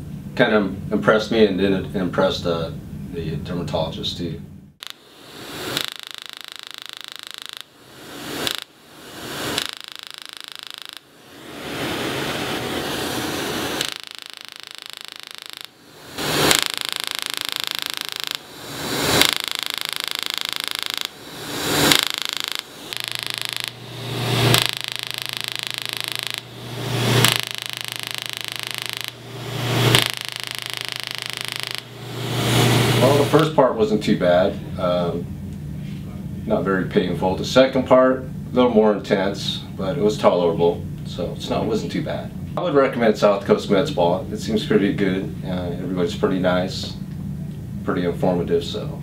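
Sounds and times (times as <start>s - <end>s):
machine hum: 0.0s - 49.0s.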